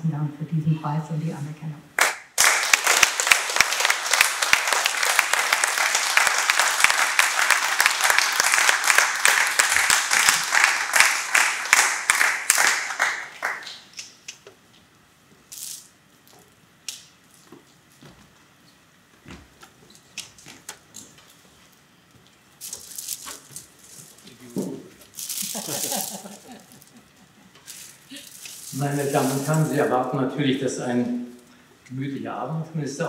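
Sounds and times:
audience applauding: 2.0 - 13.9.

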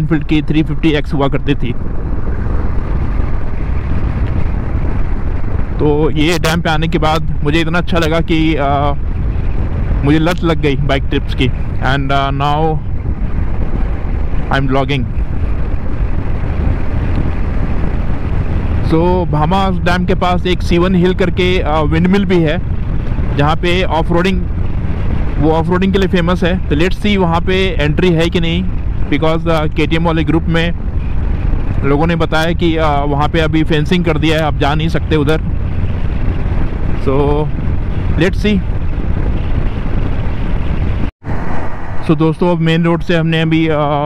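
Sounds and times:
motorcycle engine and tyres: 0.0 - 44.0
wind rushing over microphone: 0.0 - 44.0.

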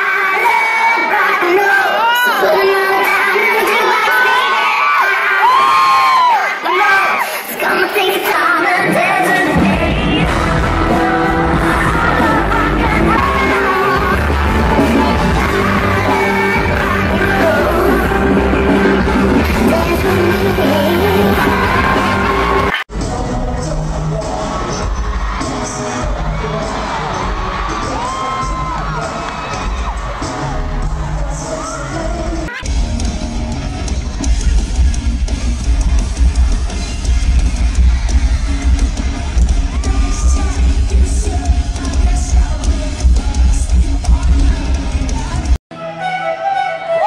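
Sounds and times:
audience yelling and cheering: 0.0 - 45.6
loud amplified live music: 0.0 - 47.0
drums: 7.4 - 45.6.

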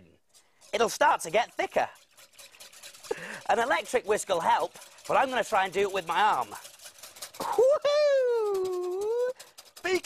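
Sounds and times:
person calling out: 7.4 - 9.4.

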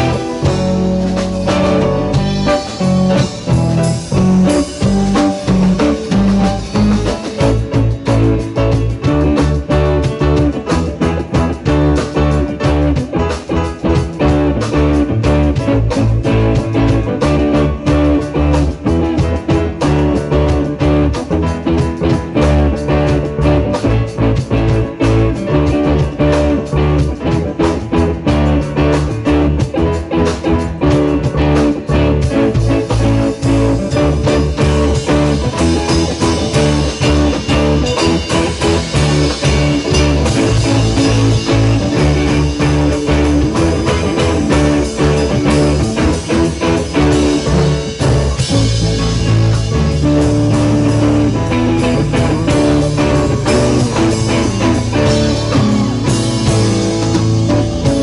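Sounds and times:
bass guitar: 0.0 - 58.0
drum kit: 0.0 - 58.0
electric guitar: 0.0 - 58.0
keyboard: 0.0 - 58.0.

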